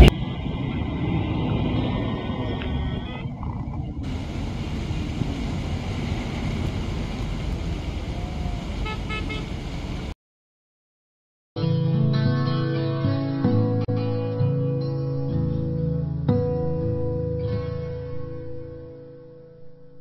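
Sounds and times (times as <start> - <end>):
cars running past: 0.0 - 10.2
car horn toots: 8.8 - 9.6.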